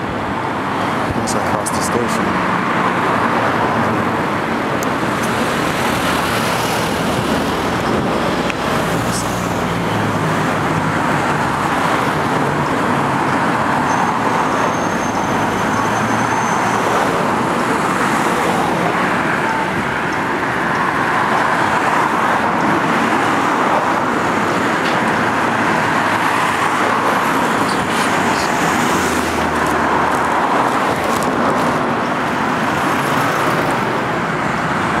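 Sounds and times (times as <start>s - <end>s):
road traffic passing cars: 0.0s - 35.0s.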